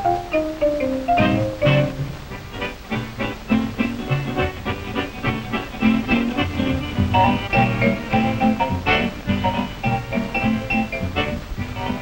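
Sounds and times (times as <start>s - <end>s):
vintage jazz dance-band music: 0.0s - 12.0s.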